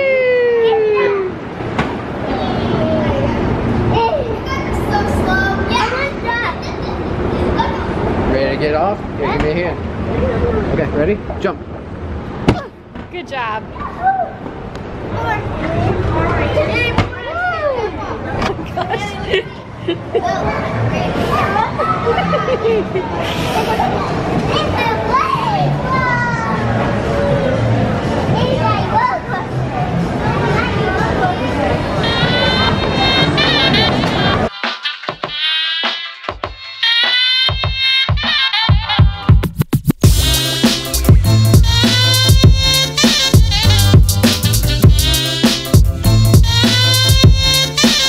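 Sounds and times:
young children calling and squealing: 0.0 - 1.6, 19.1 - 26.8
young children's voices: 2.2 - 8.2, 13.6 - 27.5, 28.1 - 34.4.

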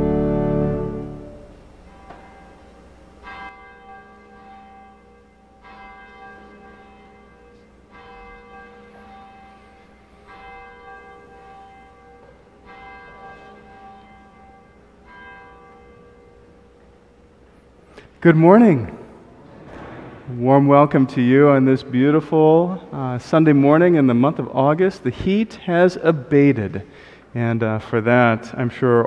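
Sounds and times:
church bell tolling: 0.0 - 24.8.

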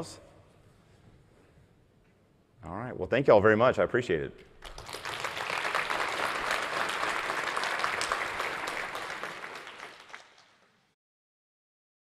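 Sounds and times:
audience applauding: 4.6 - 10.8.

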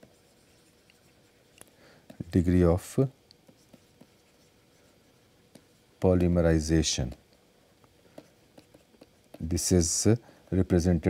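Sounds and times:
stylus scratching and tapping: 0.0 - 2.5, 3.3 - 6.3, 6.9 - 9.8.

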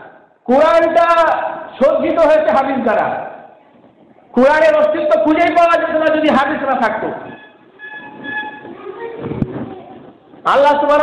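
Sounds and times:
faint horn-like tones: 7.2 - 9.0.

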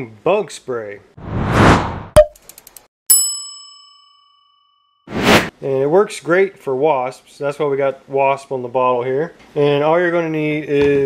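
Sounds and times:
whoosh: 1.2 - 2.2, 5.1 - 5.5
bright bell-like ding: 3.1 - 5.0.

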